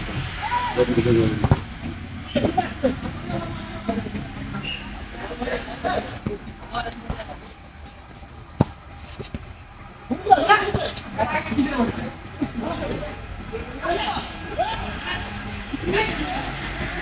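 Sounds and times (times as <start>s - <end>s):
boys shouting: 0.0s - 1.4s, 10.1s - 17.0s
football being kicked: 1.4s - 1.7s, 7.9s - 9.5s.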